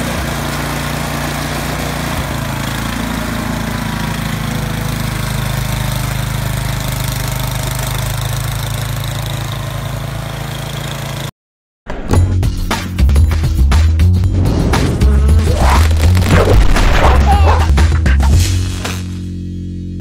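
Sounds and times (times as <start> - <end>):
snowblower engine running: 0.0 - 11.3, 14.3 - 20.0.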